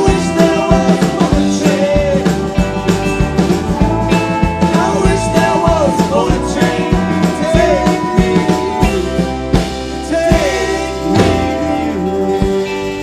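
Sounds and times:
live rock band playing: 0.0s - 13.0s
sliding guitar notes: 0.0s - 13.0s.

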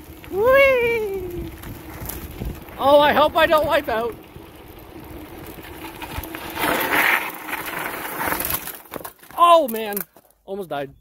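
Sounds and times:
bicycle tyre noise on dirt: 0.0s - 10.8s
bicycle knocks and rattles: 1.6s - 4.0s, 5.4s - 10.4s.

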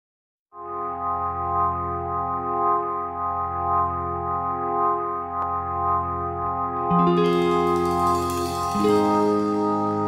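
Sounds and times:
sustained organ chord: 0.6s - 10.0s.

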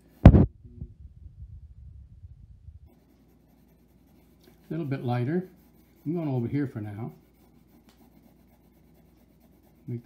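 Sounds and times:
sharp knock: 0.3s - 0.5s
pencil shading on paper: 2.9s - 10.0s.

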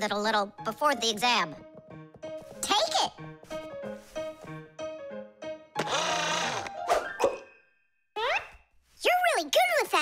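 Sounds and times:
bouncy cartoon music: 0.0s - 7.6s.

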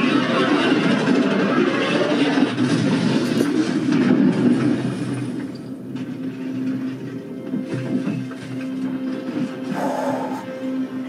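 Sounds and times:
dramatic sound effects and score: 0.0s - 11.0s.

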